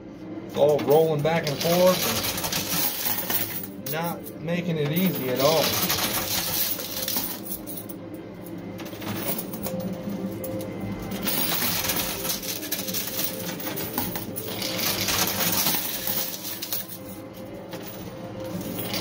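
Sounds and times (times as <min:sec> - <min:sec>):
background music: 0:00.0 - 0:19.0
coins clattering and clinking: 0:00.6 - 0:19.0.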